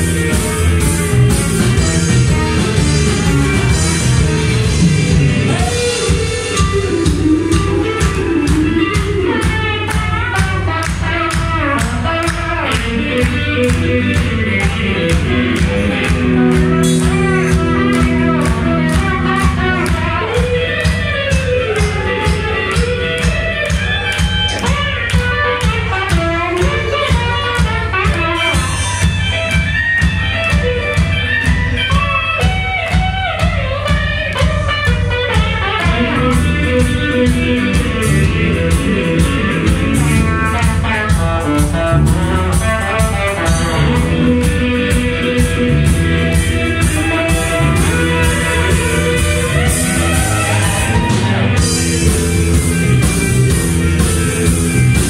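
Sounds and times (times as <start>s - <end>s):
bass guitar: 0.0s - 55.0s
electric guitar: 0.0s - 55.0s
steady drum beat: 0.0s - 55.0s
drum kit hits: 13.2s - 33.2s.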